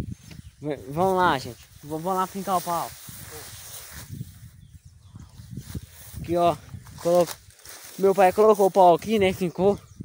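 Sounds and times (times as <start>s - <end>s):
grass rustling: 0.0s - 9.7s
footsteps in tall grass: 0.1s - 9.6s.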